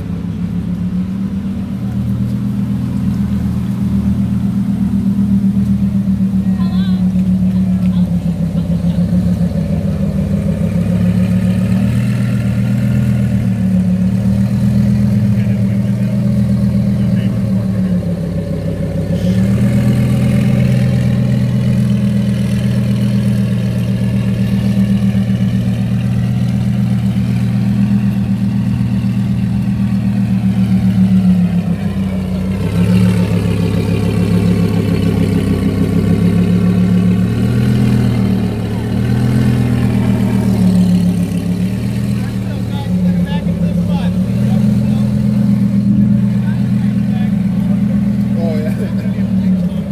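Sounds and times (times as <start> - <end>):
car engine idling: 0.0 - 49.9.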